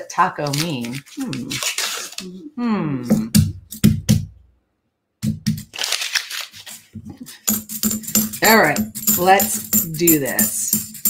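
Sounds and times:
paper wrapper tearing and crinkling: 0:00.2 - 0:02.3, 0:05.6 - 0:07.0
coins clicking: 0:07.4 - 0:11.0.

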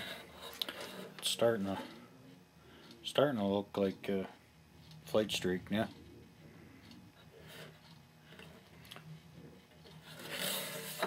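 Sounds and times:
rubbing and scraping of wooden model: 0:00.0 - 0:02.0, 0:07.2 - 0:08.8, 0:09.4 - 0:11.0.

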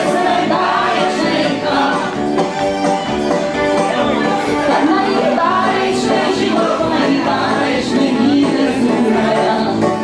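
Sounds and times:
voices singing together with music: 0:00.0 - 0:02.7, 0:03.8 - 0:10.0.

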